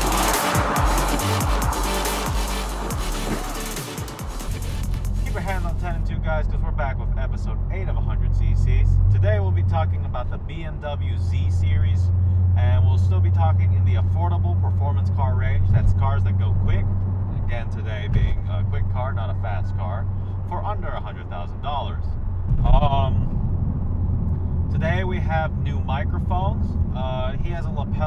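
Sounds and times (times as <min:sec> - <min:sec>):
car exhaust drone: 0:00.0 - 0:28.0
people talking: 0:05.2 - 0:23.3, 0:24.7 - 0:28.0.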